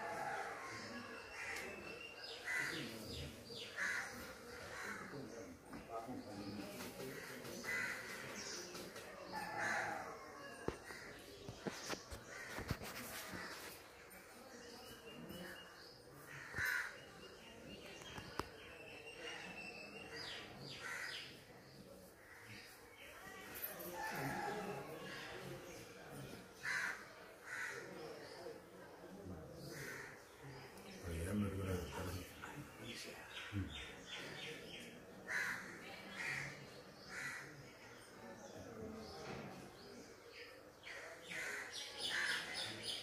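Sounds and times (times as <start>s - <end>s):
faint low voices: 0.0s - 43.0s.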